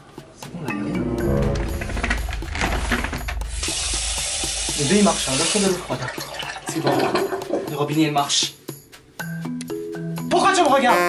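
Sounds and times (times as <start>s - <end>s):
water running into basin: 1.6s - 7.9s.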